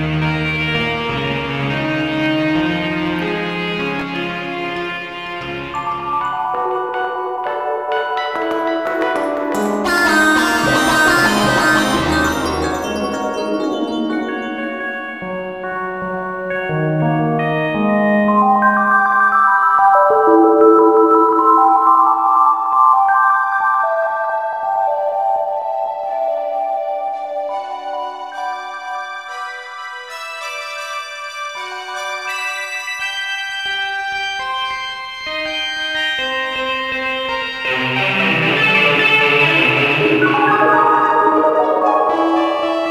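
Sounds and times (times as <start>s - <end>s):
generative synth music: 1.8s - 18.1s, 37.0s - 42.9s.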